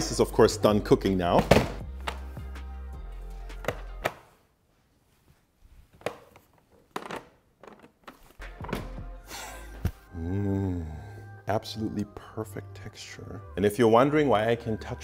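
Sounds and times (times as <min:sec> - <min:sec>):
background music with low tone: 0:00.0 - 0:04.2, 0:08.4 - 0:15.0.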